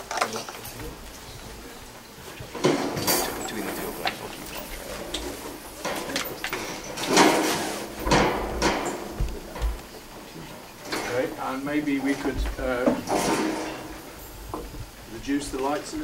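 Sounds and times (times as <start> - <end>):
equipment handling scrapes and knocks: 2.4 - 15.0.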